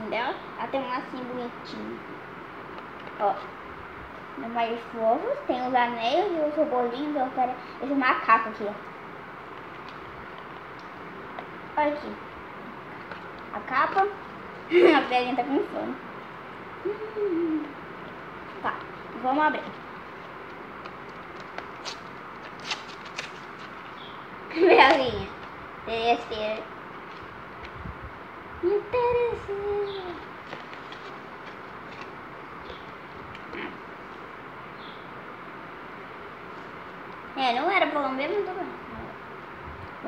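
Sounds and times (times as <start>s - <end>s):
steady background hiss: 0.0s - 40.0s
low hum-like vocal sound: 16.8s - 17.9s
foil wrapper crinkling: 21.1s - 24.0s.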